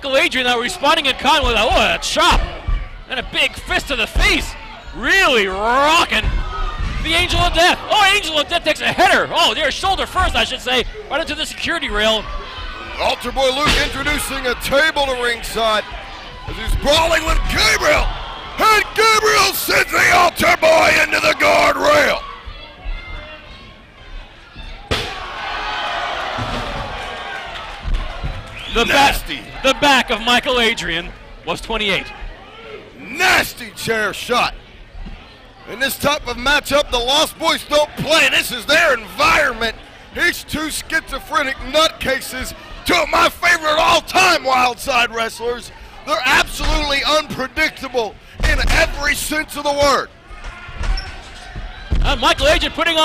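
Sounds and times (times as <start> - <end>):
low hum of arena noise: 0.0 - 53.0
crowd roaring: 11.8 - 23.4, 24.6 - 30.8.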